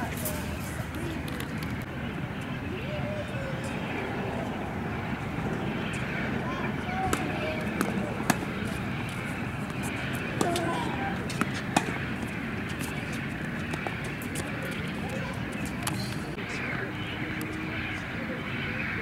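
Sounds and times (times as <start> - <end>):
distant voices: 0.0 - 19.0.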